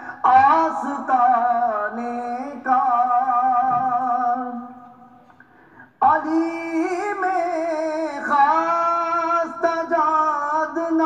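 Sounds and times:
man singing devotional poem: 0:00.0 - 0:05.2, 0:06.0 - 0:11.0.

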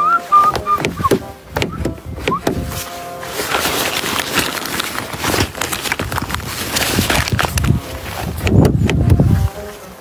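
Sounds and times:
whistled tune: 0:00.0 - 0:02.7
car door swinging open: 0:00.5 - 0:02.7
car door latch clicks: 0:00.8 - 0:02.6.

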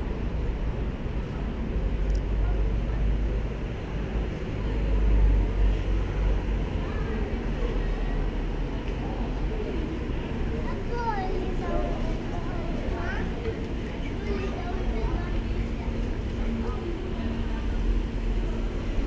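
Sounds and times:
faint voices of passers-by: 0:00.0 - 0:19.0
street rumble: 0:00.0 - 0:19.0.

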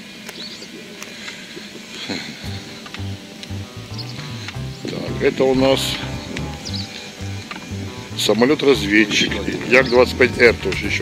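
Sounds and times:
small birds chirping: 0:00.0 - 0:11.0
sharp clicks: 0:02.8 - 0:04.6.

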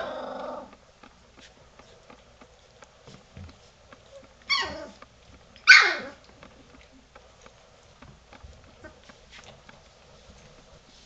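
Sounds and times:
puppy barking high-pitched: 0:04.5 - 0:04.9, 0:05.6 - 0:06.2.

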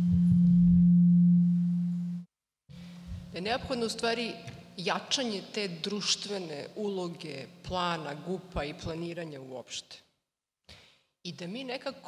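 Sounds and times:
microphone feedback low tone: 0:00.0 - 0:03.4.

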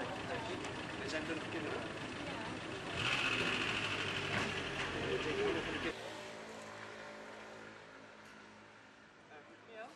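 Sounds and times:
vehicle engine humming: 0:00.0 - 0:08.5.

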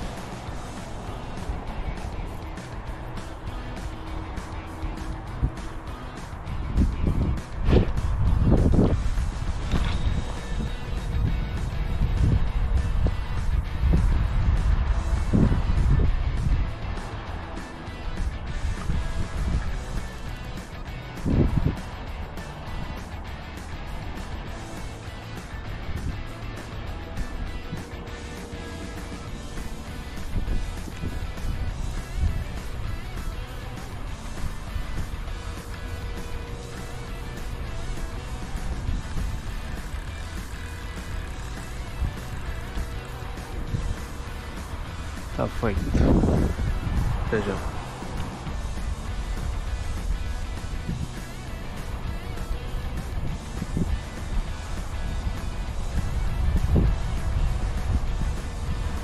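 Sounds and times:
quiet music: 0:00.0 - 0:59.0
wind rumble on microphone: 0:00.0 - 0:59.0.

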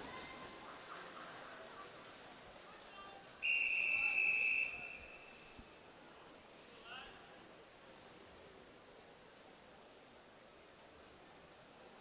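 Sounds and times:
referee's whistle blast: 0:03.4 - 0:05.4.

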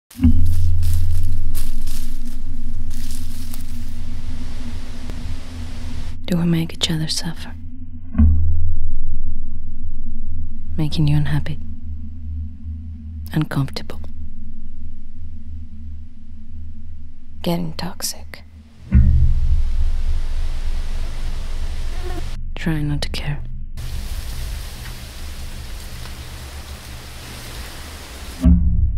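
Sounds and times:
deep low drone: 0:00.1 - 0:28.9
strong gusting wind: 0:18.8 - 0:22.4, 0:23.8 - 0:28.4.

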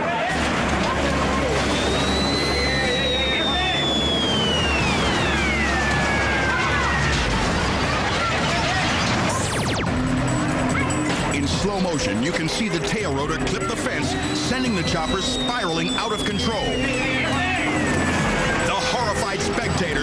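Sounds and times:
music: 0:00.0 - 0:20.0
voices: 0:00.0 - 0:20.0
helicopter hovering overhead: 0:00.5 - 0:20.0.

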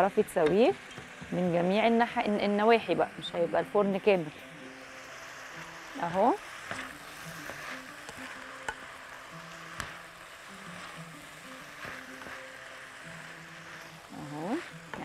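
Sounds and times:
quiet background music: 0:00.0 - 0:15.0
vegetables sizzling in oil: 0:00.0 - 0:15.0.

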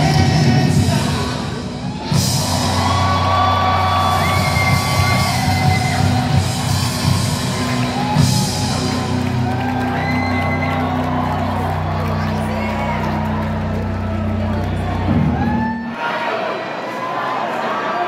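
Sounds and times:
rock band playing live: 0:00.0 - 0:15.8
fans whooping: 0:01.8 - 0:16.3.

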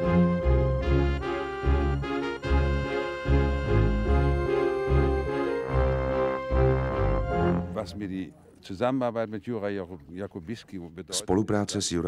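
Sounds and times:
man speaking: 0:07.6 - 0:12.0.

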